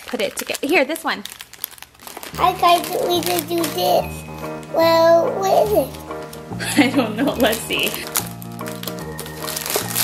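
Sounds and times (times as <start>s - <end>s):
background music with bass line: 2.4s - 10.0s.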